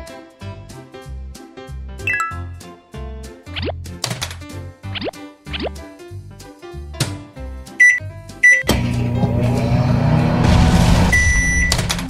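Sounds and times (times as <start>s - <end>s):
toy microwave beeps: 7.8s - 8.7s, 11.1s - 11.9s.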